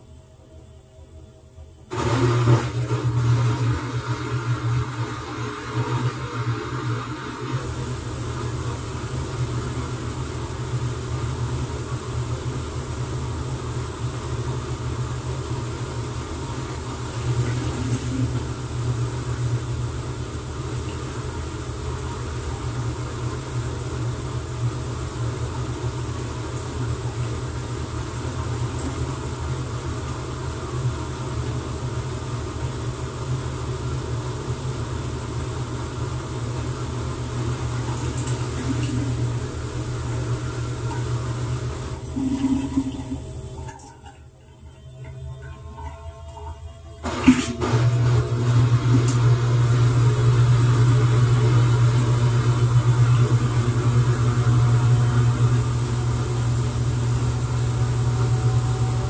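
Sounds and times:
washing machine spinning: 0.0s - 59.0s
faint high whine: 37.2s - 59.0s.

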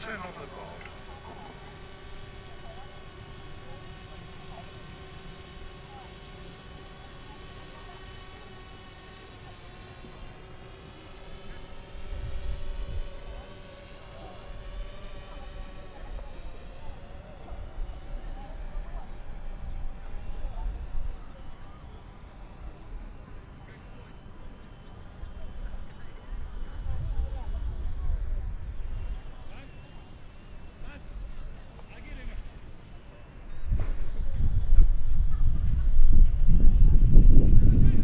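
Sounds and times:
drone propellers whining: 0.0s - 38.0s
wind gusts on microphone: 33.6s - 38.0s.

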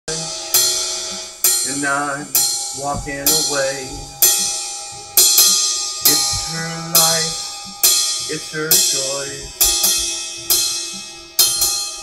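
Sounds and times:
crash cymbals ringing: 0.1s - 12.0s
low drum hits: 0.1s - 12.0s
person singing: 1.6s - 4.4s, 6.0s - 7.6s, 8.2s - 10.0s.

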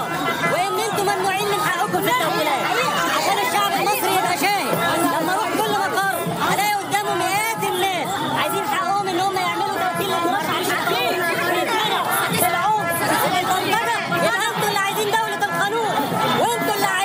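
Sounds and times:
voices chattering: 0.0s - 17.0s.

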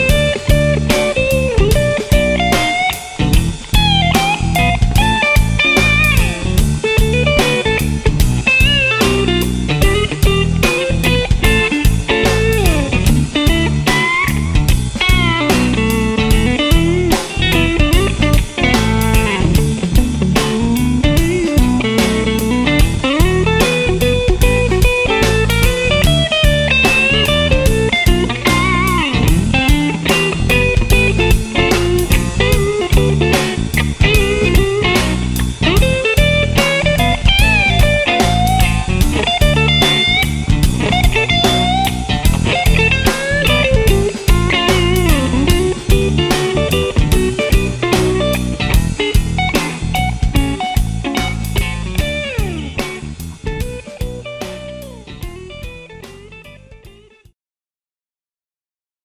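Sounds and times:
steady drum beat: 0.0s - 57.1s
electric guitar lead with bent notes: 0.0s - 57.2s
electric bass: 0.0s - 57.3s.

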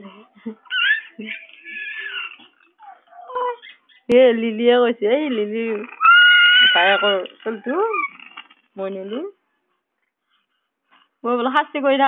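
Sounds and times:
baby cooing and squealing: 0.6s - 3.8s, 5.8s - 8.4s.

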